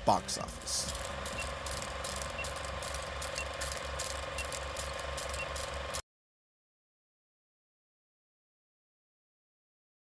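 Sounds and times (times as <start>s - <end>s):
hum: 0.0s - 6.0s
film projector clattering: 0.6s - 6.0s.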